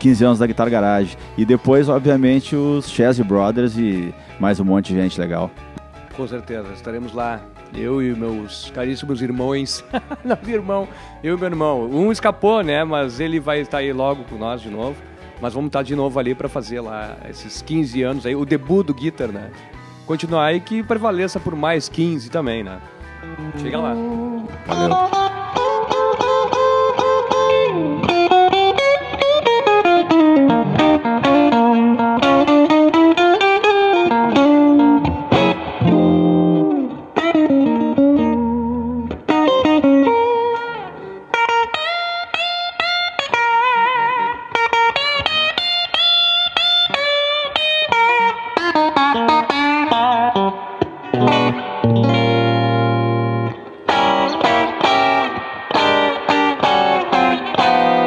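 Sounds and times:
electric guitar lead lines: 22.4 - 58.0
ringing low guitar note: 23.2 - 25.8.

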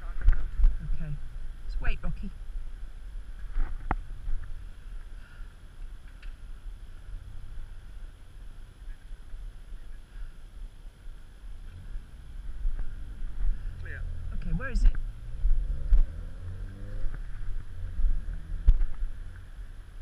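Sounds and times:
faint street traffic hum: 0.0 - 20.0.

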